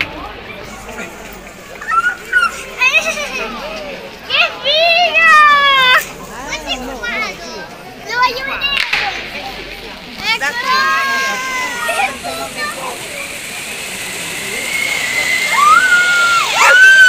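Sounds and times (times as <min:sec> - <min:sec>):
children shouting and squealing: 0:00.0 - 0:09.3, 0:10.2 - 0:17.0
fireworks going off: 0:04.7 - 0:17.0
sharp crack: 0:08.6 - 0:10.3
long high cry: 0:15.5 - 0:17.0.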